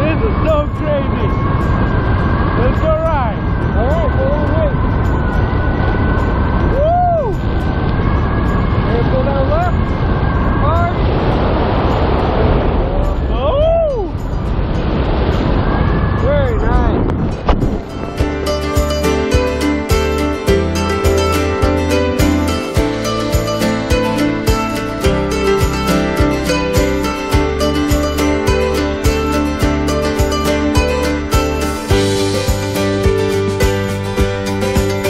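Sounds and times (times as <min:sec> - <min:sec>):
wind rushing over microphone: 0:00.0 - 0:35.0
plucked string music: 0:17.0 - 0:35.0.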